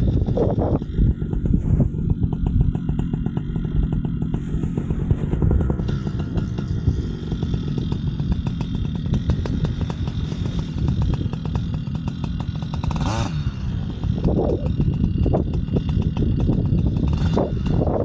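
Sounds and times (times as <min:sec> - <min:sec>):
two-stroke engine running: 0:00.0 - 0:18.0.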